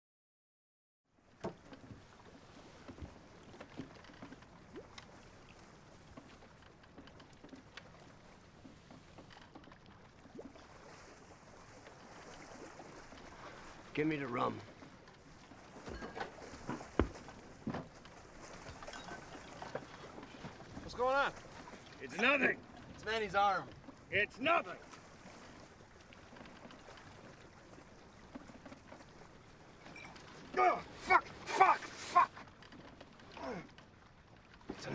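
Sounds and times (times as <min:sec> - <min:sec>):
water lapping against hull: 0:01.1 - 0:34.9
faint knocks on wooden boat: 0:15.8 - 0:18.0.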